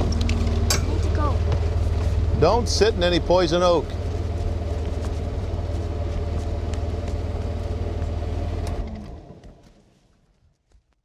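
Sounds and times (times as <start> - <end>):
vehicle engine rumbling: 0.0 - 10.2.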